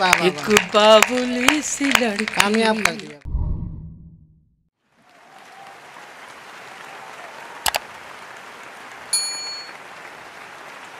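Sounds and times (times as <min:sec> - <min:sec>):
applause: 0:00.0 - 0:03.2, 0:04.8 - 0:10.9
notification bell ding: 0:09.2 - 0:09.7.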